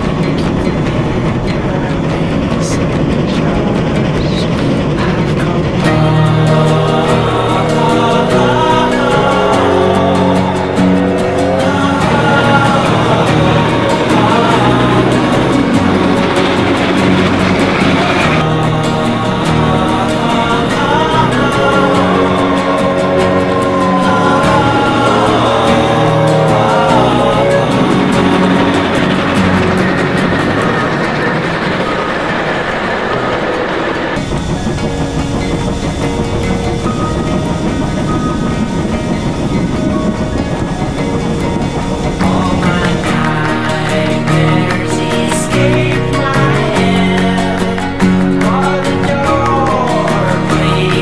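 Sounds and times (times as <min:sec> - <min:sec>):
background music: 0:00.0 - 0:51.0
steam train passing: 0:00.0 - 0:51.0.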